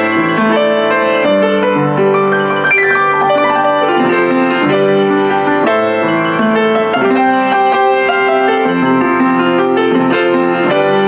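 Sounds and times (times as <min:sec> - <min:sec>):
upright piano chords and melody: 0:00.0 - 0:11.0.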